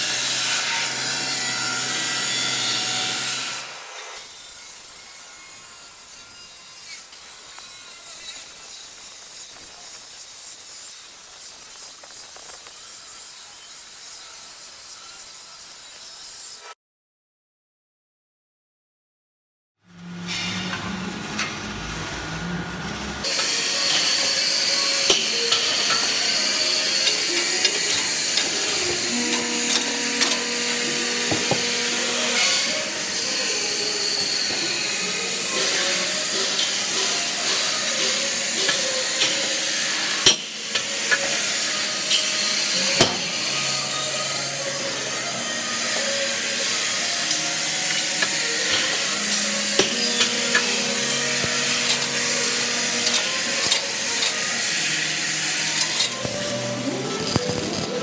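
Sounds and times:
welding machine hiss: 0:04.2 - 0:16.7, 0:23.2 - 0:58.0.

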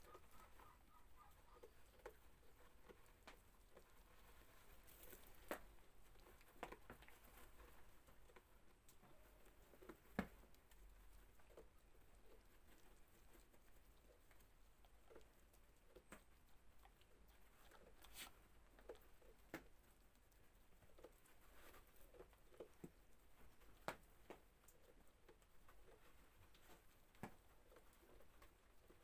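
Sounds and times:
goat crunching snow: 0:00.0 - 0:16.0, 0:17.4 - 0:19.5, 0:20.8 - 0:29.0.

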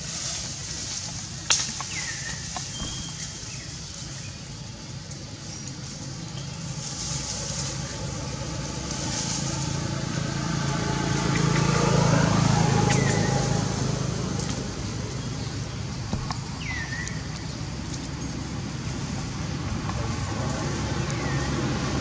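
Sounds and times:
vehicle engine running: 0:00.0 - 0:22.0.

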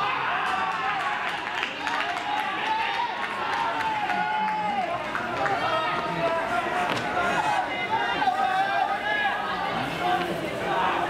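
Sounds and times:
voices shouting: 0:00.0 - 0:11.0.

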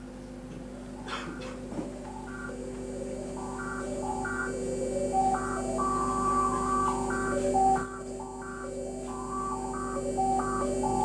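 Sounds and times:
steady low drone: 0:01.9 - 0:11.0
stepping sequence of electronic tones: 0:02.3 - 0:11.0
very high whistle: 0:07.7 - 0:08.7.

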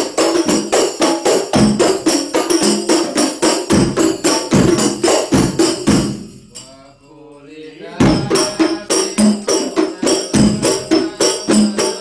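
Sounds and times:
frame drums striking rhythmically: 0:00.0 - 0:06.8, 0:07.8 - 0:12.0
person chanting: 0:06.6 - 0:12.0.

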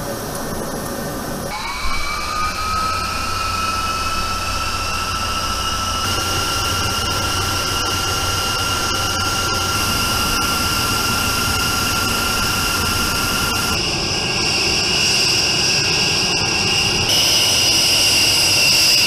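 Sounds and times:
jet engines whining: 0:00.0 - 0:19.0.

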